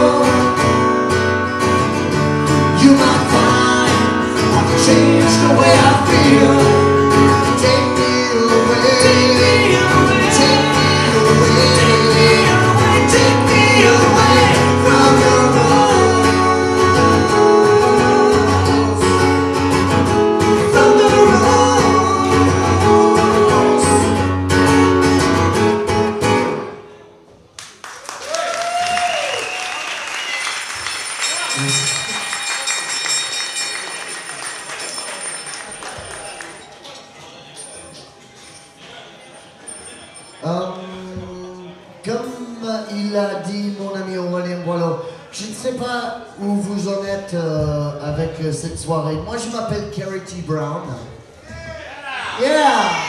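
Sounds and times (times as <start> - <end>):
man singing: 0.0 - 1.0, 2.6 - 24.4, 40.4 - 50.1
country song on acoustic guitar: 0.0 - 26.8
audience applause: 27.6 - 37.0.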